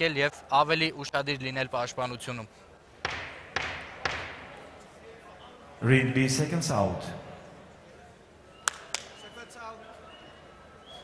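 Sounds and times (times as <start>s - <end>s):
sharp knocks echoing in hall: 3.0s - 4.8s.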